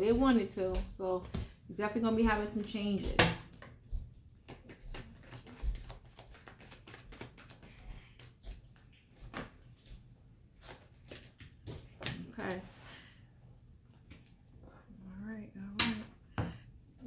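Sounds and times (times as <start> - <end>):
cards being shuffled: 4.4 - 10.0, 10.6 - 12.4.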